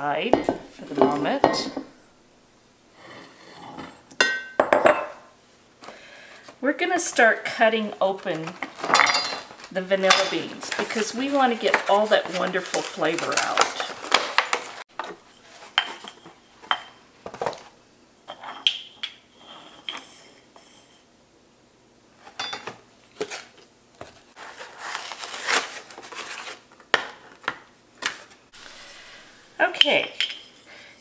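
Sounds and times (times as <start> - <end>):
paper rustling: 8.1 - 14.8, 23.1 - 26.8.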